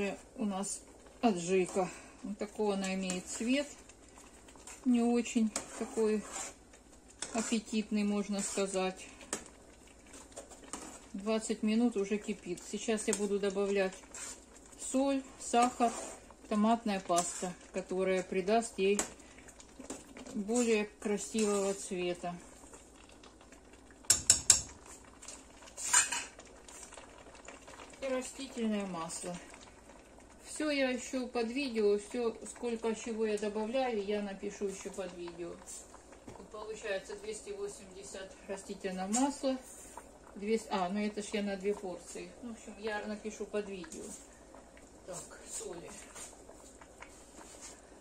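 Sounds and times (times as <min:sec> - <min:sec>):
thick sauce bubbling in a pot: 0:00.0 - 0:48.0
metal spoon knocking on pot: 0:24.1 - 0:24.8.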